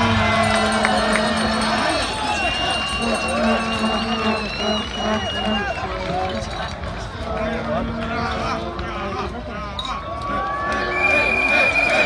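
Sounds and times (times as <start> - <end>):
crowd talking and calling out: 0.0 - 12.0.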